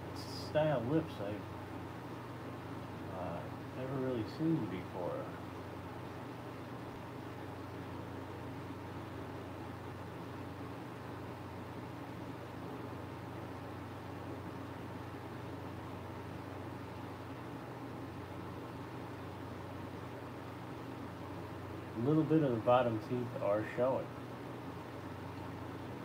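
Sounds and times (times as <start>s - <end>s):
electric fan running: 0.0s - 26.0s.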